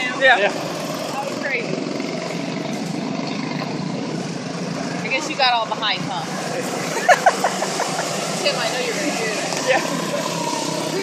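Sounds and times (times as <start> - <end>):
small race car engines droning: 0.0 - 11.0.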